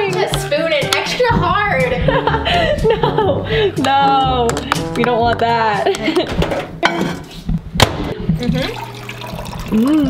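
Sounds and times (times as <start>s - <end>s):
background music with bass: 0.0s - 6.8s
woman laughing: 1.9s - 3.8s, 5.8s - 6.4s.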